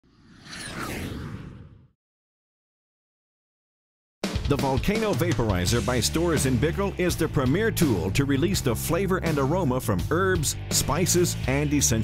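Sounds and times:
whoosh with deep rumble: 0.0 - 2.0.

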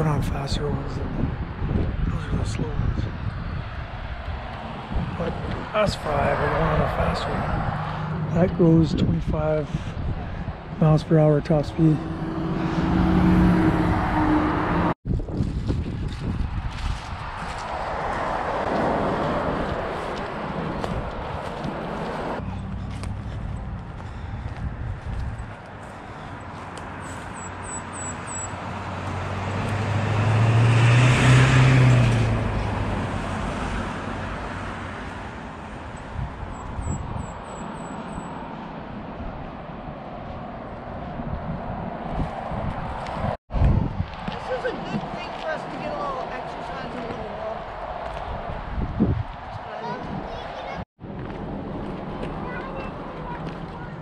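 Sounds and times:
wind on microphone: 0.0 - 26.1, 30.2 - 37.5, 39.1 - 52.2
car passing by: 4.3 - 8.8, 11.4 - 15.0, 16.8 - 23.4, 26.0 - 39.2.

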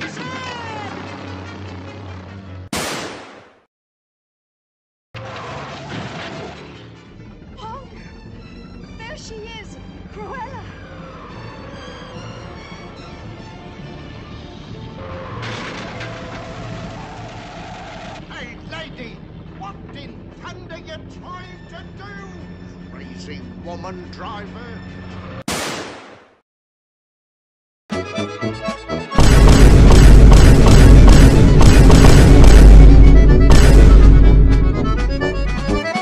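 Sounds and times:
engine rumble: 0.0 - 2.7, 5.2 - 25.4, 29.2 - 35.9
film soundtrack music: 0.0 - 3.4, 6.0 - 25.5, 27.9 - 36.0
orchestral music: 27.9 - 36.0
loud ringing bang: 29.2 - 35.0.

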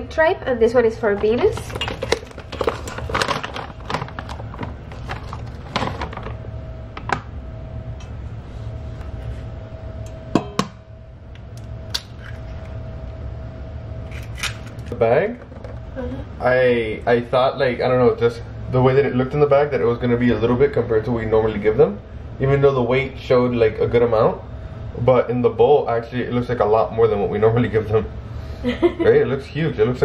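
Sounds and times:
faint steady hum: 0.0 - 30.0
plastic bag rustling: 1.2 - 6.5
metal bowl knocks and clinks: 10.1 - 10.8.

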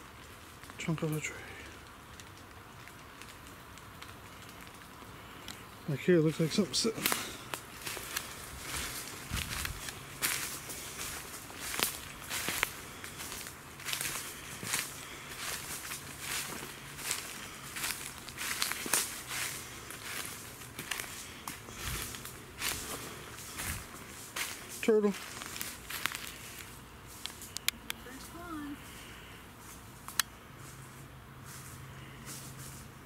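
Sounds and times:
footsteps crunching dry leaves: 2.9 - 33.0.

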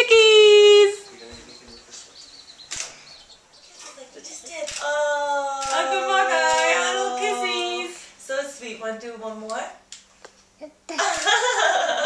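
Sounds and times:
baby chicks peeping: 0.7 - 4.9
sharp click: 2.7 - 3.0.

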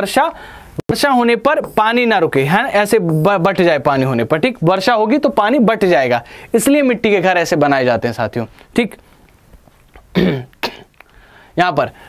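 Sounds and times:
man coughing: 10.1 - 10.9.

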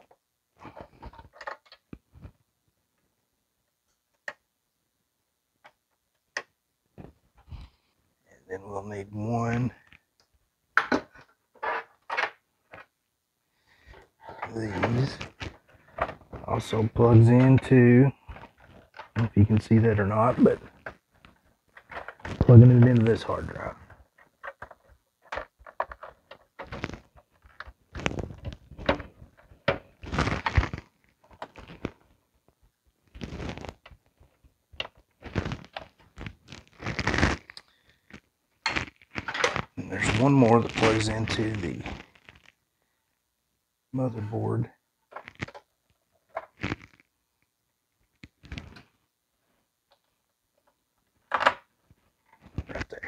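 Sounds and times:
cables and plastic connectors rustling: 0.0 - 2.5, 13.7 - 42.6, 45.1 - 47.1, 48.0 - 49.0, 49.9 - 53.0.

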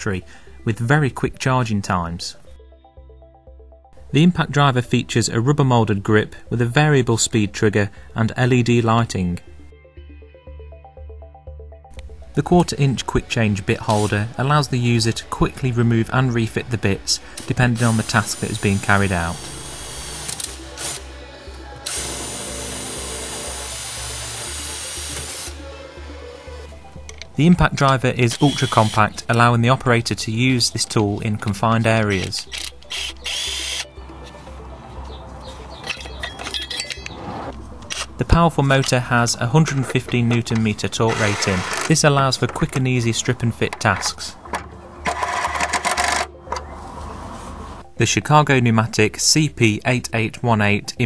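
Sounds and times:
background music with steady beat: 0.0 - 51.0
metal parts clinking: 35.8 - 37.2, 43.7 - 46.3.

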